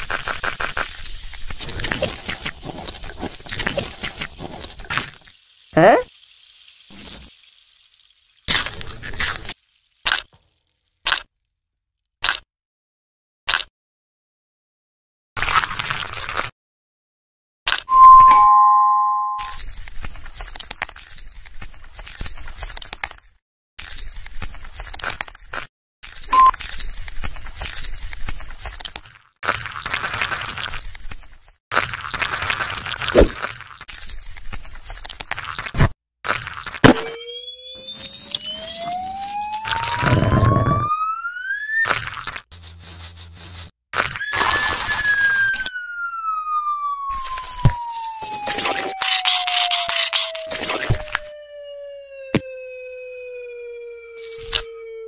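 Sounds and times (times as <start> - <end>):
two-note doorbell chime: 17.9 - 19.5
whistle tone gliding in pitch: 17.9 - 19.6, 37.0 - 41.8, 44.2 - 55.0.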